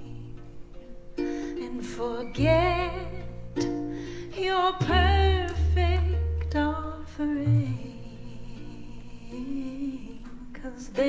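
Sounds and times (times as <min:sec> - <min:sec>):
double bass: 0:00.0 - 0:10.6
acoustic guitar: 0:00.0 - 0:11.0
person singing: 0:00.0 - 0:11.0.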